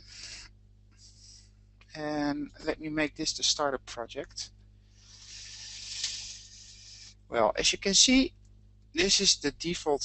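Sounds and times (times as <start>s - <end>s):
soft high-pitched hiss: 0.0s - 8.3s.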